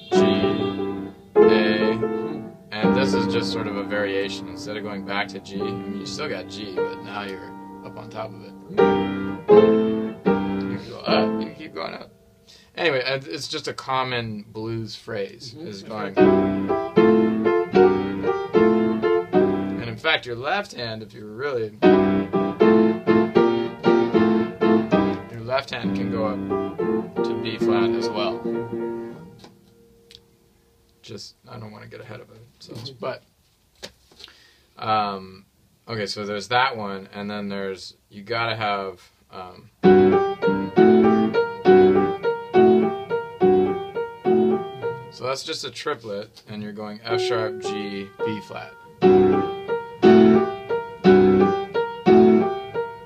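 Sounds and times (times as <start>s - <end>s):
piano chords ringing: 0.0s - 12.4s, 15.7s - 20.5s, 21.5s - 30.4s, 39.8s - 45.4s, 47.0s - 53.0s.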